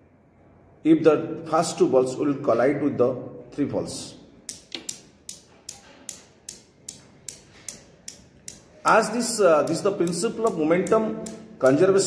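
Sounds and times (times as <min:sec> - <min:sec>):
newton's cradle balls clicking: 0:04.5 - 0:12.0.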